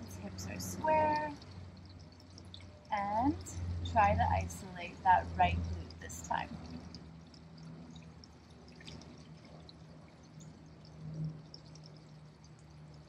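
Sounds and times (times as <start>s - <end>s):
faint low hum: 0.0s - 13.0s
water trickling and dripping: 0.0s - 13.0s.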